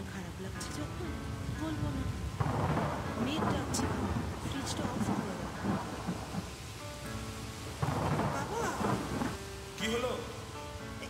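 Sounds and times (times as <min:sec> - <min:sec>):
thunder rumbling: 0:00.0 - 0:10.8
steady rain: 0:00.0 - 0:11.0
loud thunderclap: 0:01.4 - 0:06.8, 0:07.6 - 0:09.6.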